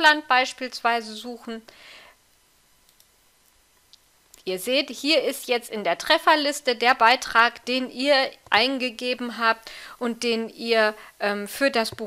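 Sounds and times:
faint computer mouse clicks: 2.8s - 4.5s.

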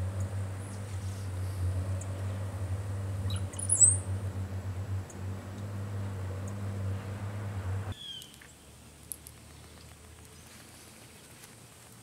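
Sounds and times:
steady low hum: 0.0s - 8.0s
high-pitched bird chirp: 3.2s - 4.1s, 7.9s - 8.4s.

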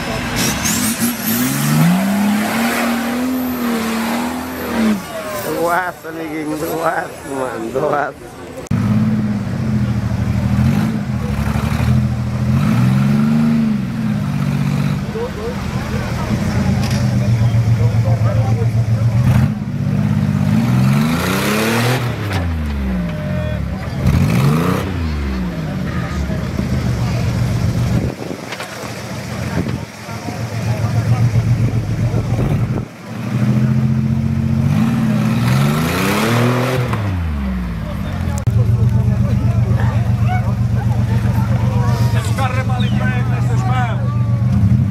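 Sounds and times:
suv engine revving: 0.0s - 7.8s, 8.6s - 44.9s.

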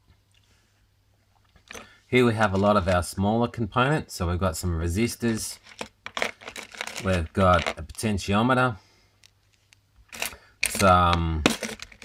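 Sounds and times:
man talking: 2.1s - 5.6s, 7.0s - 8.8s, 10.7s - 11.6s.

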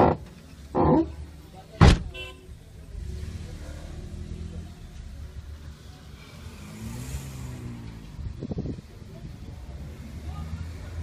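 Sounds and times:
road noise inside car: 0.0s - 11.0s
car engine accelerating: 2.5s - 11.0s.

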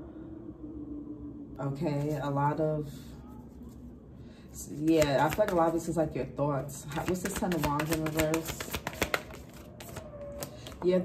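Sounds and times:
cards being shuffled: 4.7s - 6.0s, 6.8s - 11.0s.

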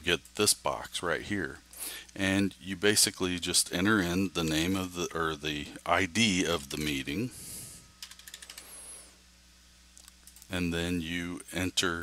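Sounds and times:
keyboard keys clicking: 8.0s - 8.6s.

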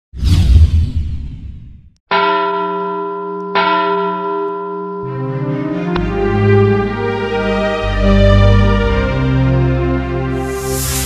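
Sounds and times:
ringing bell strikes: 2.1s - 5.5s
intro jingle music: 5.0s - 11.0s.

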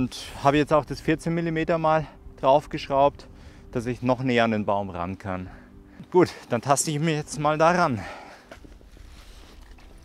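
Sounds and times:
boots stepping through wet mud: 8.2s - 10.0s.

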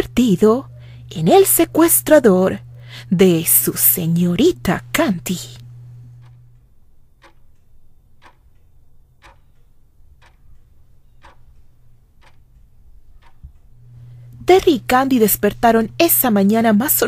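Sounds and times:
faint low hum: 0.0s - 17.0s
clock ticking softly: 6.2s - 14.7s.

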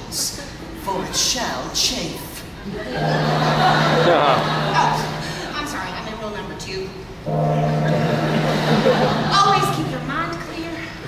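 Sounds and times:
low steady horn blast: 2.9s - 5.5s, 7.2s - 10.4s.

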